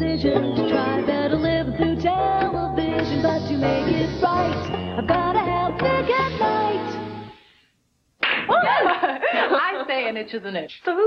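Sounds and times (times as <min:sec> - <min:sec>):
woman talking: 0:08.5 - 0:11.0.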